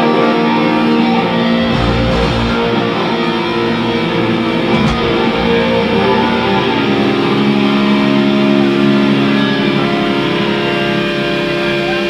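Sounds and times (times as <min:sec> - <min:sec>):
distorted electric guitars chord: 0:01.4 - 0:09.7.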